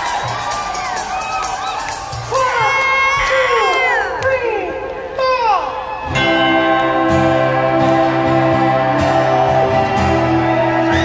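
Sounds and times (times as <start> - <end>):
crowd cheering and whooping: 0.0 - 4.2, 5.8 - 11.0
band playing sustained chord: 6.2 - 11.0.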